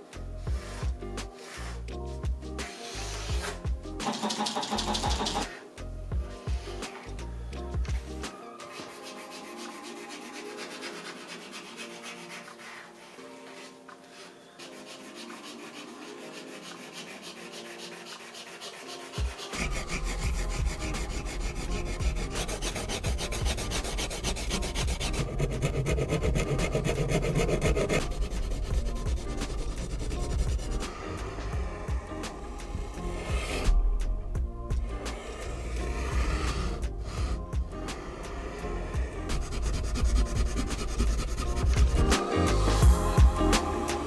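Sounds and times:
paint marker rubbing on canvas: 0.0 - 5.8, 7.8 - 34.1, 34.7 - 44.0.

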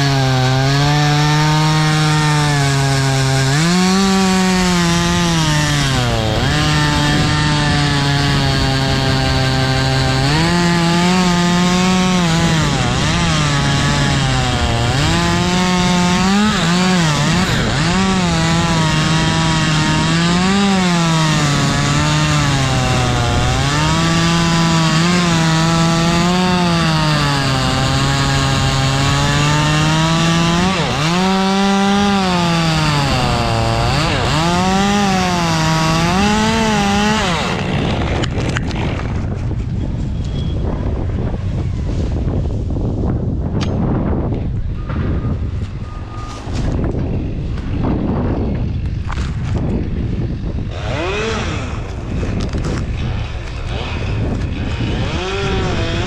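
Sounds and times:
chainsaw cutting wood: 0.0 - 39.8, 45.6 - 56.0.

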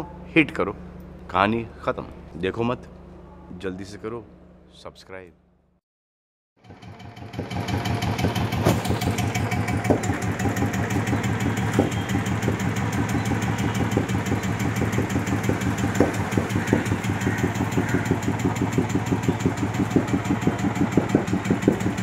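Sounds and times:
motorcycle engine idling: 6.6 - 22.0.

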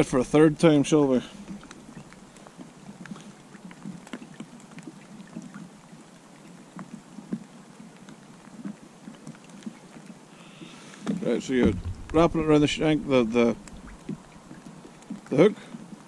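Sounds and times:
steady rain falling: 10.2 - 16.0
raindrops tapping close by: 10.6 - 16.0.

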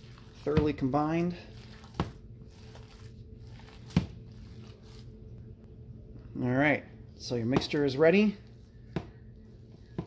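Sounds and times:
hands kneading raw meat: 0.0 - 5.6, 6.4 - 10.0
steady low hum: 0.0 - 10.0.

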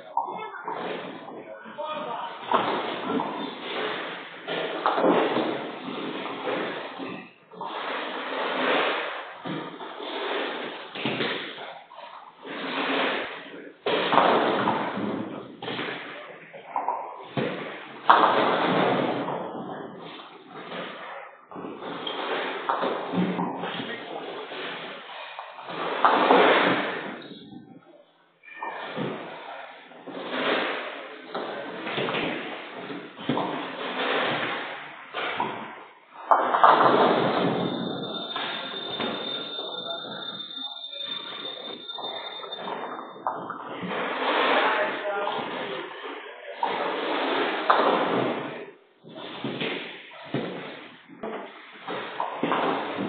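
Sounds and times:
faint voices: 0.0 - 4.9, 19.5 - 35.4, 37.0 - 53.0
bowling balls rolling: 0.0 - 53.0.

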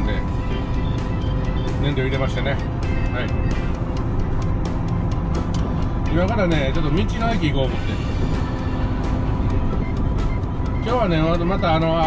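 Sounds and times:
road noise: 0.0 - 12.0
truck engine rumble: 0.0 - 12.0.

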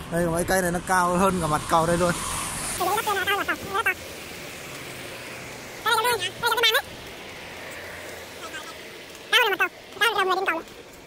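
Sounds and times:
man talking: 0.0 - 2.2, 2.8 - 4.0, 5.8 - 6.9, 9.3 - 10.7
vehicle tyre hiss passing: 0.0 - 10.0
traffic and wind hiss: 0.0 - 11.0.

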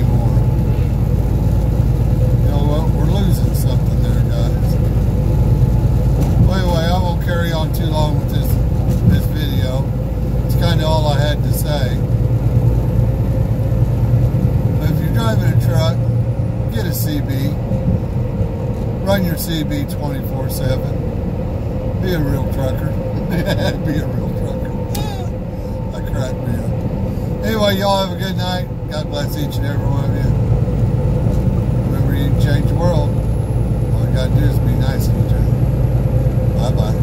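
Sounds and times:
road noise: 0.0 - 37.0
truck engine drone: 0.0 - 37.0
garbled voices over radio: 22.0 - 25.3.

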